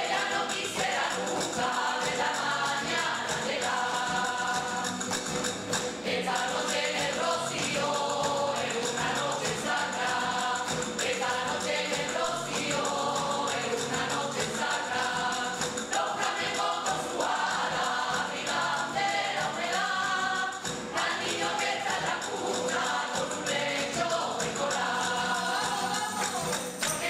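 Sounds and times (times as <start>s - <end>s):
choir singing: 0.0s - 27.0s
rhythmic hand clapping: 0.0s - 27.0s.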